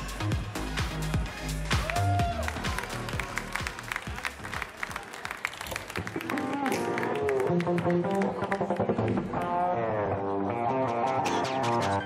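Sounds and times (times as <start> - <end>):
background music: 0.0 - 12.0
audience applauding: 1.7 - 9.0.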